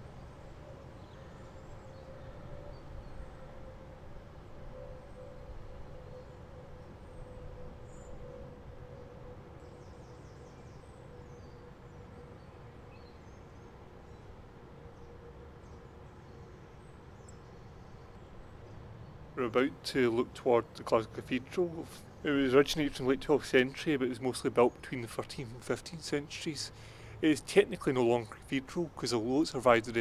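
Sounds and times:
faint steady hum: 0.0 - 30.0.

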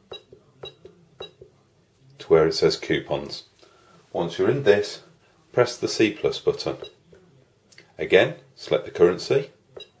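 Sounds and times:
high key beep: 0.0 - 1.4, 6.8 - 7.0, 9.8 - 10.0.

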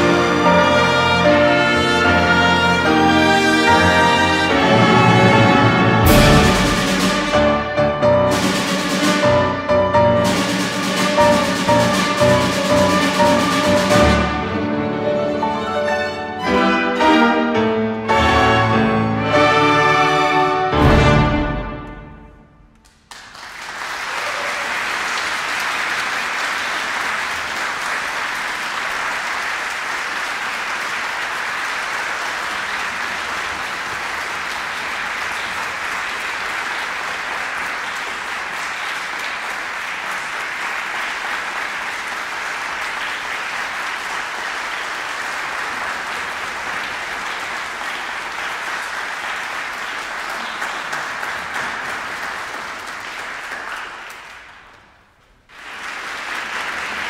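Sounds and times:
audience applause: 0.0 - 16.2, 22.8 - 57.0
piano chord: 6.0 - 14.0.

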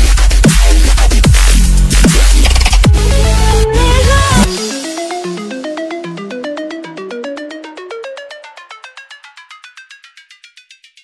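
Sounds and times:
electronic dance music: 0.0 - 8.8
fast repeated synth notes: 1.2 - 10.5.

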